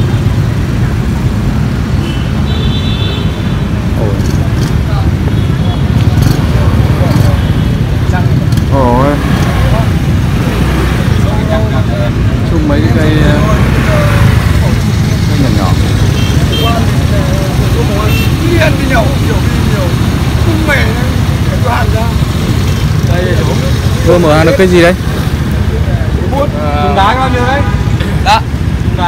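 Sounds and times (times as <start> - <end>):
street traffic rumble: 0.0 - 29.0
people talking: 3.9 - 29.0.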